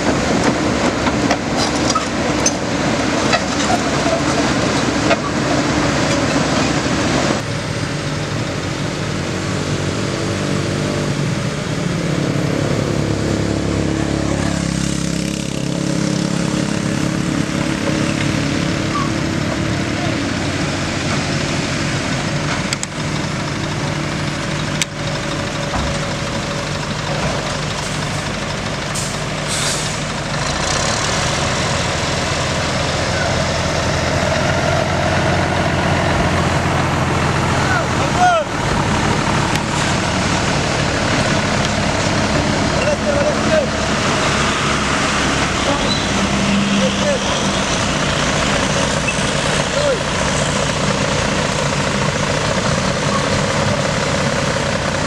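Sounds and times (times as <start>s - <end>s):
diesel machinery running: 0.0s - 55.0s.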